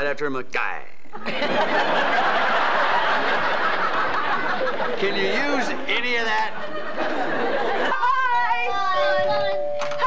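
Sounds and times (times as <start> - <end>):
group of people laughing: 1.1 - 8.3.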